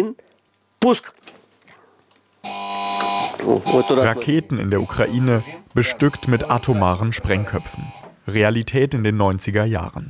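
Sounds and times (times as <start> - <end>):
alarm buzzer: 2.4 - 8.2.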